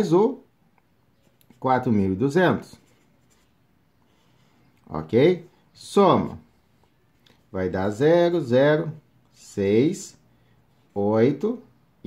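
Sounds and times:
person speaking: 0.0s - 12.0s
marker pen scratching on paper: 2.6s - 4.6s.

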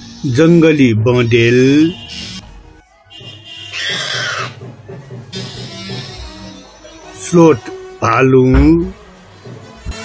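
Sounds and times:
background music: 0.0s - 10.0s
wild boar squealing: 3.7s - 4.6s.

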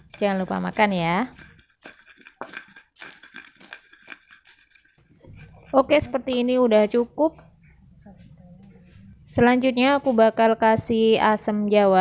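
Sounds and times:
pestle crunching in mortar: 0.0s - 6.6s.

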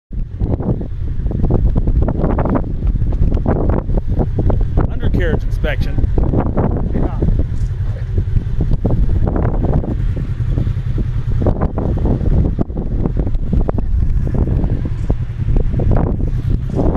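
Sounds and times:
off-road vehicle engine running: 0.1s - 16.9s
wind on microphone: 0.1s - 16.9s.

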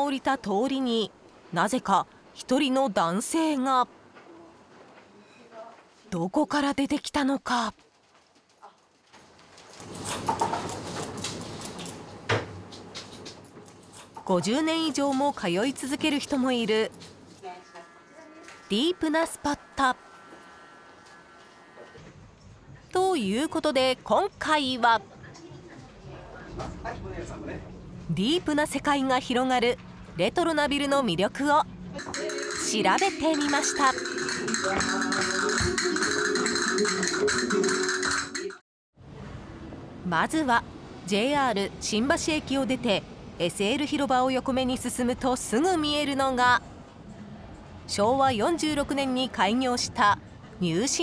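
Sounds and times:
shop background noise: 3.3s - 51.0s
flamenco guitar: 32.0s - 38.6s
sharp percussive clicks: 32.0s - 38.6s.

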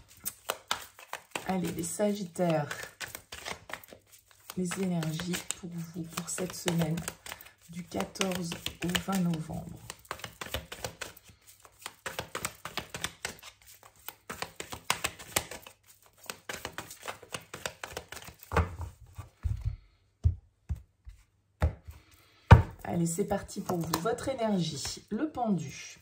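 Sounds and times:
cards being shuffled: 0.0s - 19.8s, 23.5s - 25.0s.

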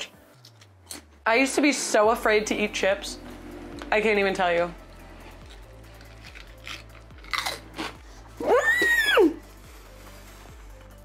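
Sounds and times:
potato chip crunching: 5.3s - 8.0s.

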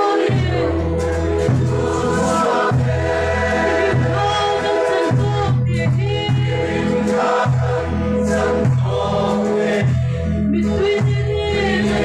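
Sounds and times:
crowd singing a hymn: 0.0s - 12.0s.

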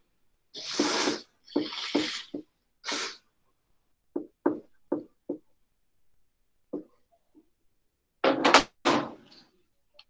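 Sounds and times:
marker scratching on whiteboard: 0.6s - 3.2s
marker tapping on board: 4.1s - 5.5s, 6.7s - 7.0s.

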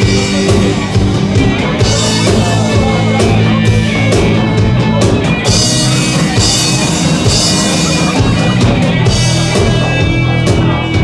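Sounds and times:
rock band playing: 0.0s - 11.0s
sustained guitar tone: 0.0s - 11.0s.

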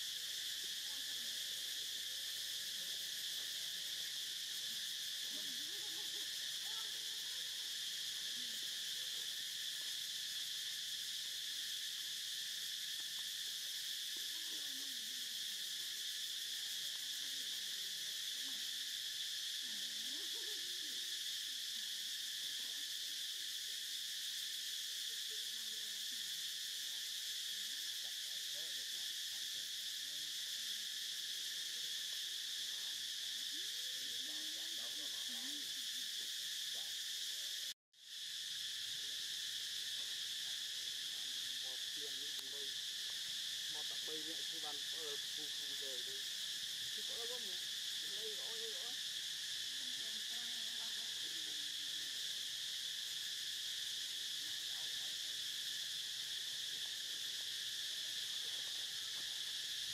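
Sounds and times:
insects droning: 0.0s - 59.9s.

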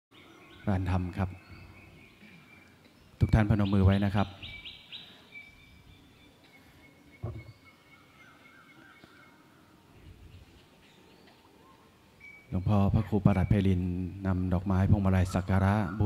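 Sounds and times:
birds chirping: 0.1s - 16.0s.

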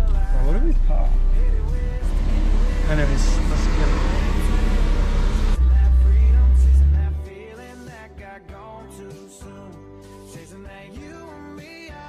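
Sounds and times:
low engine drone: 0.0s - 7.3s
road and engine rumble: 0.0s - 7.3s.

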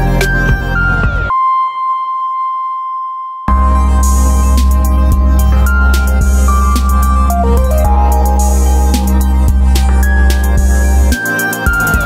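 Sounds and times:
electronic beat and bass: 0.0s - 1.4s, 3.5s - 12.0s
steady high synth tone: 0.0s - 12.0s.

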